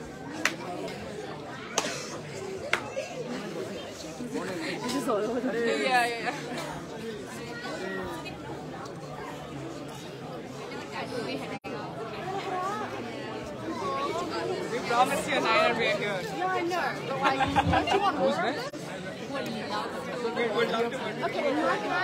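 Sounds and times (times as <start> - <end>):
people chattering: 0.0 - 22.0.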